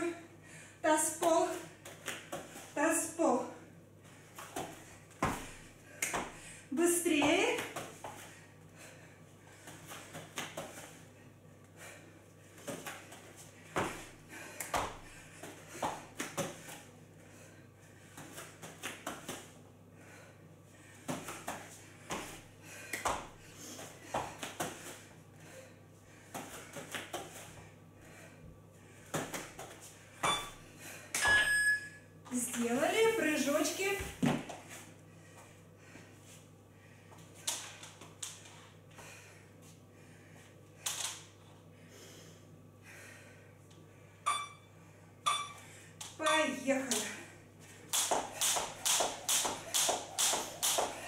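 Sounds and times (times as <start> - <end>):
short electronic beep: 44.3 - 44.7, 45.3 - 45.6.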